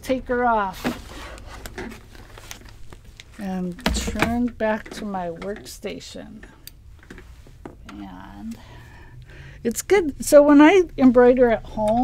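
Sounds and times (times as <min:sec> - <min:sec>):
fabric rubbing and rustling: 0:00.6 - 0:03.7.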